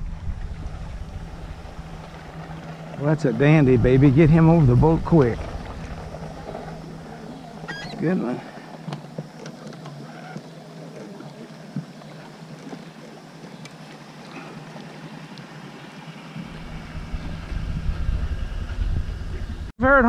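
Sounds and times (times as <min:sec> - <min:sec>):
low rumble: 0:00.0 - 0:08.7, 0:16.4 - 0:20.0.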